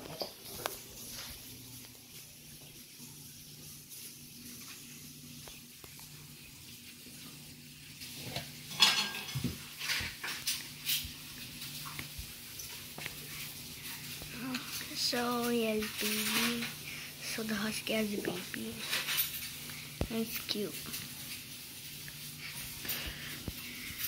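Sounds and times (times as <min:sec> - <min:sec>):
faint steady low hum: 0:00.0 - 0:24.0.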